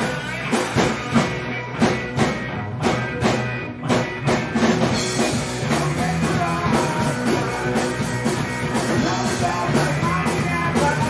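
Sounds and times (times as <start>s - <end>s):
drum kit: 0.0s - 11.0s
electric bass: 0.0s - 11.0s
electric guitar: 0.0s - 11.0s.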